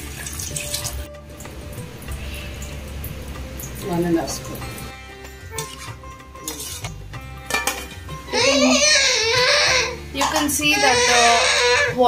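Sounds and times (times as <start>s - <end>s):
quiet background music: 0.0s - 12.0s
metal ladle clinking on pot: 5.6s - 8.0s
small child crying loudly: 8.3s - 12.0s.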